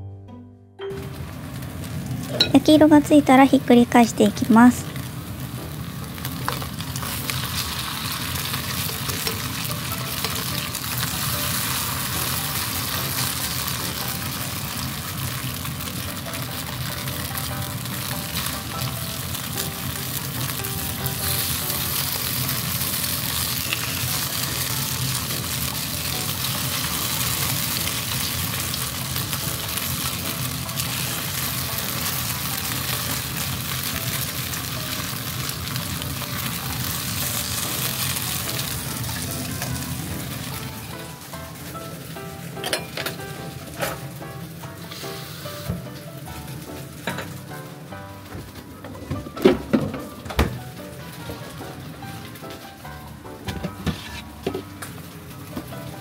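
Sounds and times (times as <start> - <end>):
patties sizzling in oil: 1.0 - 48.6.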